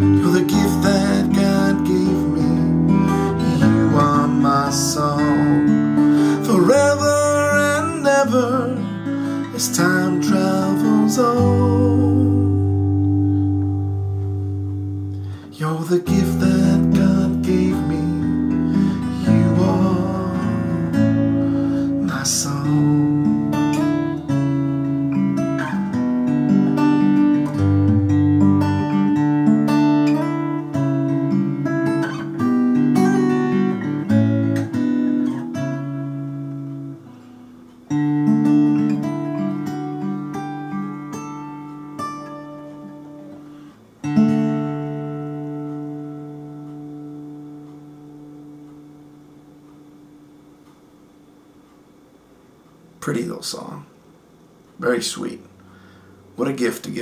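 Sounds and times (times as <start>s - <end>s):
guitar chord ringing: 0.0s - 51.4s, 54.8s - 57.0s
fingerpicked acoustic guitar: 0.0s - 53.9s, 54.6s - 57.0s.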